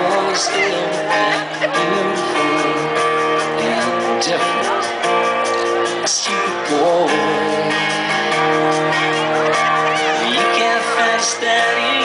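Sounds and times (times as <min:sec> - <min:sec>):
live band playing country-rock: 0:00.0 - 0:12.0
strummed acoustic guitar: 0:00.0 - 0:12.0.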